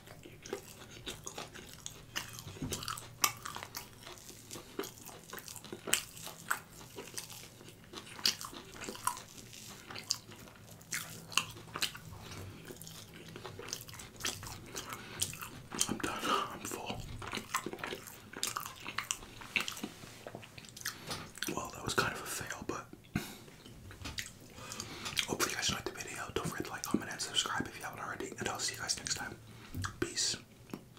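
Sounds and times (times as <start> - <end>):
wet chewing of sticky cheese: 0.0 - 30.9.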